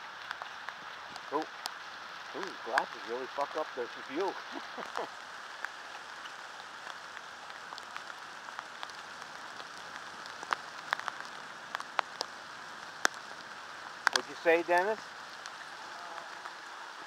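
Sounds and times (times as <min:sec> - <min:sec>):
heavy rain hiss: 0:00.0 - 0:17.0.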